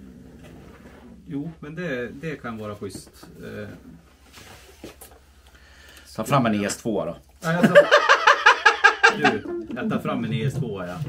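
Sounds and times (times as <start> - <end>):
rustling and handling noise: 0.0 - 5.5.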